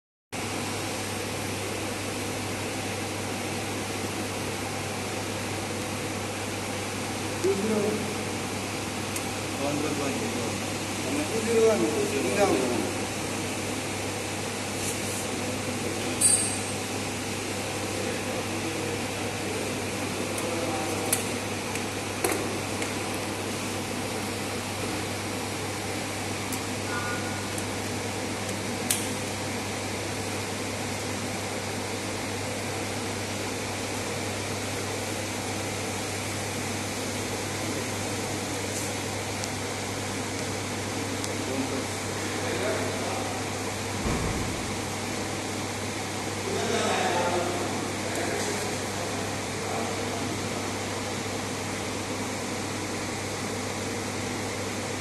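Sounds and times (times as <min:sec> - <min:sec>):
ventilation hum: 0:00.4 - 0:55.0
metallic clink: 0:16.2 - 0:16.8.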